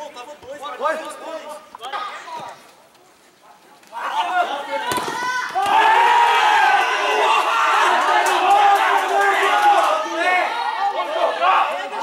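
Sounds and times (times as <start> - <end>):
men shouting and cheering: 3.9 - 12.0.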